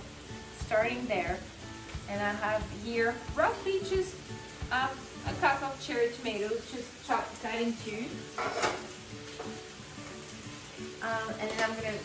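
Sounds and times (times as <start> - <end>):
tomatoes sizzling in hot oil: 0.0 - 12.0.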